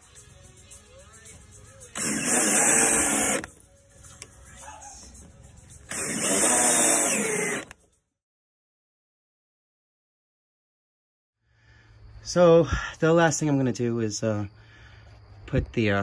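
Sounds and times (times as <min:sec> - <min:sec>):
power drill driving screws: 0:02.0 - 0:03.5, 0:05.9 - 0:07.8.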